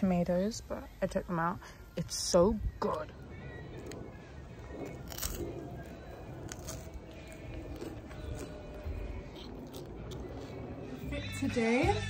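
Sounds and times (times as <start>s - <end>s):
low rumble: 1.8s - 12.0s
person chewing sandwich: 3.7s - 11.0s.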